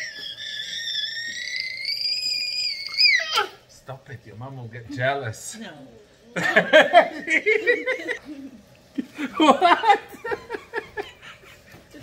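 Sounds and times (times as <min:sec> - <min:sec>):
high-pitched vocal squeal: 0:00.0 - 0:03.6.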